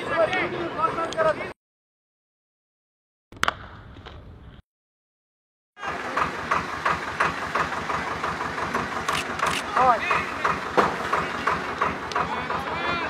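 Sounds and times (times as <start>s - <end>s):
voices talking: 0.0s - 1.6s, 5.8s - 13.0s.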